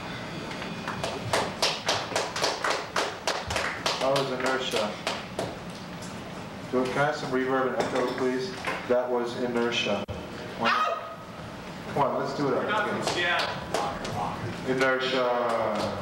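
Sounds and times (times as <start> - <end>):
people clapping: 0.8 - 5.6, 12.7 - 16.0
men talking: 4.0 - 5.1, 6.7 - 10.7, 11.8 - 16.0.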